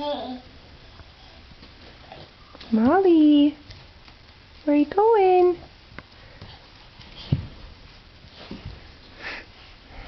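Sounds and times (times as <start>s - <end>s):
soft thumps on carpet: 7.2s - 7.7s.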